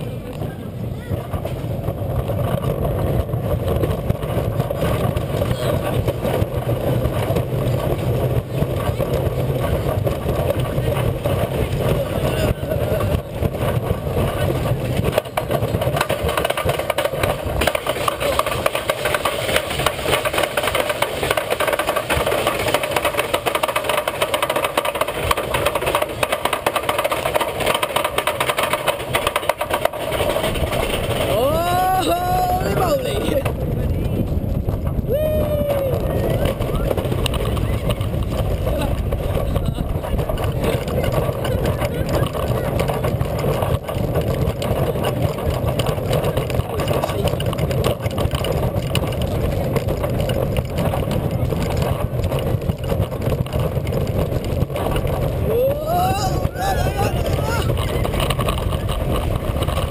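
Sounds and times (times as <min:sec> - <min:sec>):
roller coaster rumbling on track: 0:00.0 - 0:59.9.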